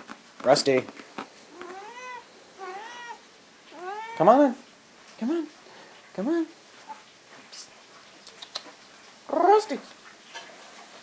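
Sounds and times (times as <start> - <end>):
cat meowing: 1.5 - 4.4.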